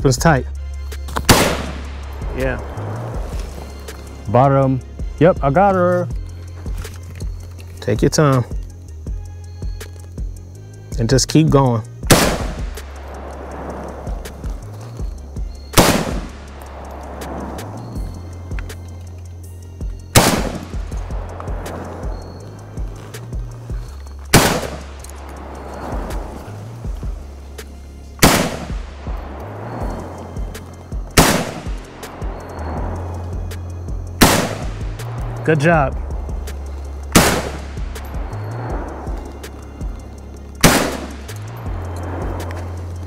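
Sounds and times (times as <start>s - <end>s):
background music with bass: 0.0s - 43.0s
rifle shots with ringing echo: 1.3s - 2.1s, 12.1s - 14.4s, 15.8s - 17.6s, 20.1s - 22.4s, 24.3s - 26.4s, 28.2s - 32.4s, 34.2s - 35.4s, 37.1s - 38.2s, 40.6s - 41.4s.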